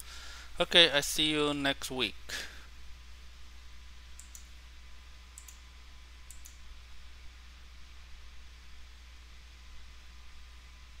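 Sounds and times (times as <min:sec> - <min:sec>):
low steady hum: 0:00.0 - 0:11.0
computer mouse clicking: 0:04.2 - 0:04.5, 0:05.4 - 0:05.6, 0:06.3 - 0:06.6.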